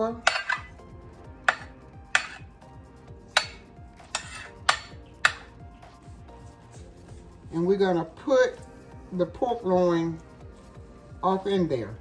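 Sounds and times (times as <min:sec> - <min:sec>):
metal spoon clinking on ceramic dish: 0:00.2 - 0:00.8, 0:03.4 - 0:05.5.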